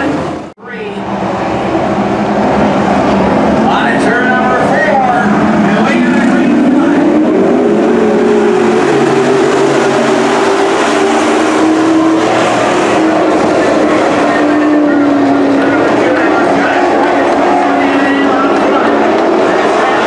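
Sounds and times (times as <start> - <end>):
race car engines running hard: 0.0 - 20.0.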